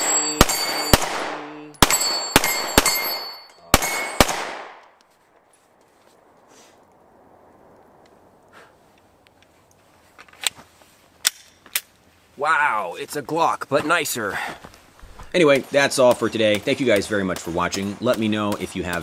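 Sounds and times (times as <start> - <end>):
pistol shots: 0.0 - 4.8.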